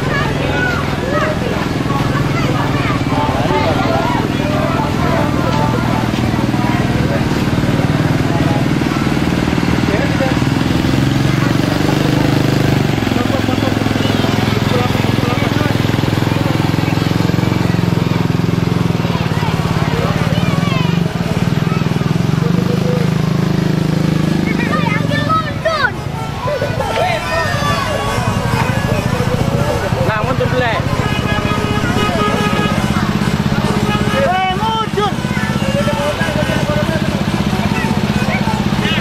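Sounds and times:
crowd voices: 0.0 - 39.0
vehicle engine running: 0.0 - 39.0.

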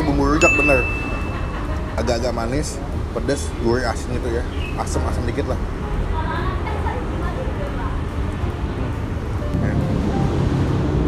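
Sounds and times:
low rumble of traffic: 0.0 - 11.0.

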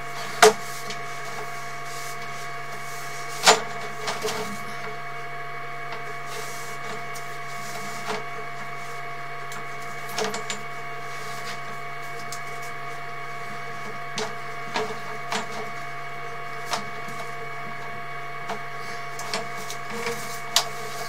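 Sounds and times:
electrical hum with whining tones: 0.0 - 21.0.

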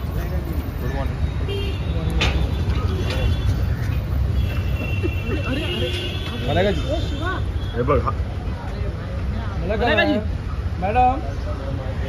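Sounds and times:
low rumble of street traffic: 0.0 - 12.0.

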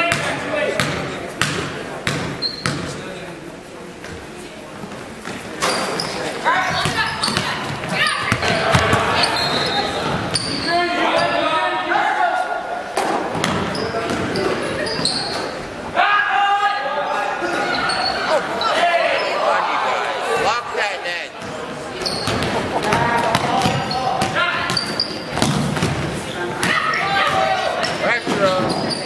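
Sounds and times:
people shouting in a gym: 6.4 - 12.8, 15.9 - 20.3, 22.9 - 25.3, 26.3 - 28.6
basketball bouncing on hardwood floor: 22.2 - 28.0.

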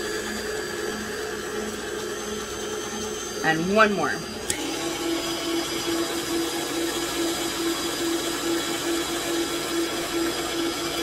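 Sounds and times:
stand mixer motor humming: 0.0 - 11.0.

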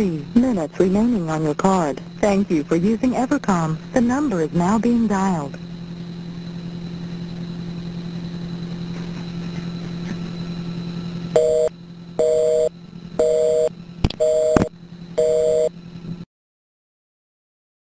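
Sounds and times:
telephone line hum: 0.0 - 16.2
busy signal beeps: 11.4 - 15.7
sharp clicks on phone line: 14.0 - 14.7.

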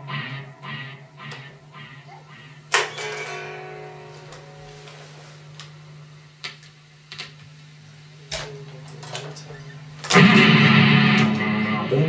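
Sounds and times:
strummed guitar chord: 0.0 - 6.4, 10.0 - 12.0
amplifier hum: 0.0 - 12.0
electric guitar notes: 0.0 - 12.0.

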